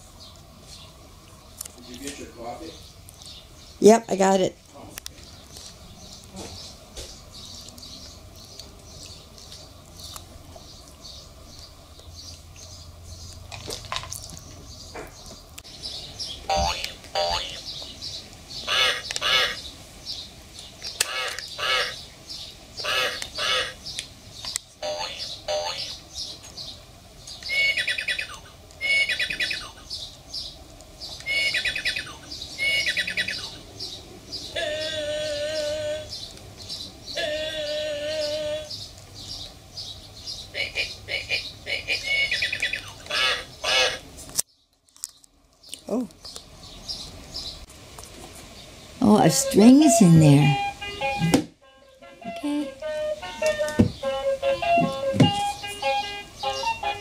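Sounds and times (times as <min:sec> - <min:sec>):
birds chirping: 0:00.1 - 0:47.7, 0:48.3 - 0:57.0.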